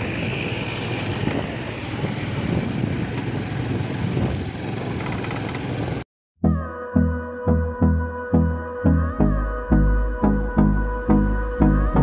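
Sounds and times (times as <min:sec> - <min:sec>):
motorcycle engine running: 0:00.0 - 0:06.0
road and wind noise: 0:00.0 - 0:06.0.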